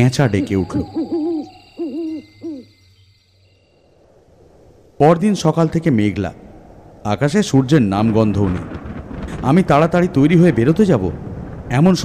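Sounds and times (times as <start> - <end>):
owl hooting: 0.0 - 3.6
faint crickets: 0.0 - 7.4.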